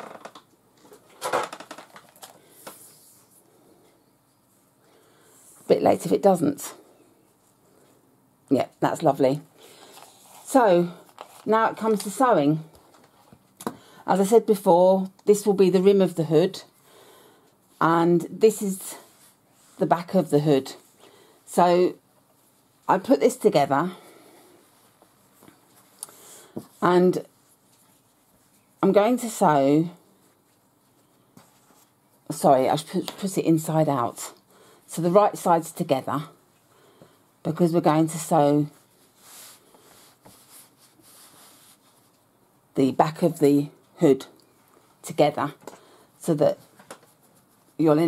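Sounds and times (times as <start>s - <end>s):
towel rustling: 38.8s - 42.1s.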